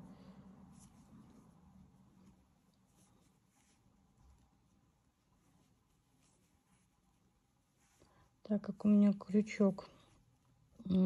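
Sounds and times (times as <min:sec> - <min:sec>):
crochet hook rustling yarn: 0:00.0 - 0:10.9.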